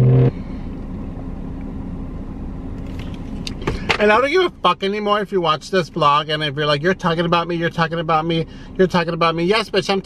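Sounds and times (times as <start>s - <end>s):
man humming: 0.0s - 0.4s
car cabin rumble: 0.0s - 10.0s.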